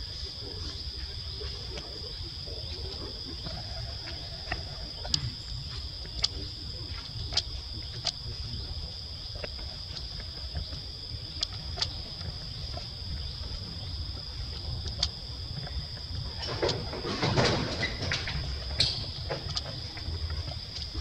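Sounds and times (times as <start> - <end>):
insect chorus drone: 0.0 - 21.0
sharp clicks: 6.0 - 16.9, 17.8 - 21.0.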